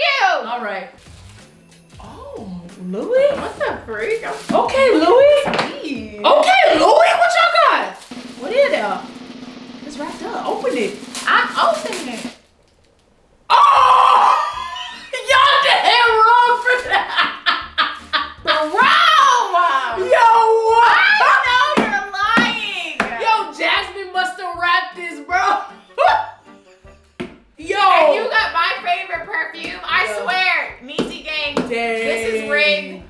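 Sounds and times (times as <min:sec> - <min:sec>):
background music with a beat: 0:01.0 - 0:04.0
people talking: 0:02.0 - 0:09.1, 0:09.8 - 0:12.4, 0:13.8 - 0:17.3, 0:18.4 - 0:26.2, 0:27.6 - 0:33.0
people laughing: 0:14.4 - 0:15.8, 0:16.6 - 0:18.9.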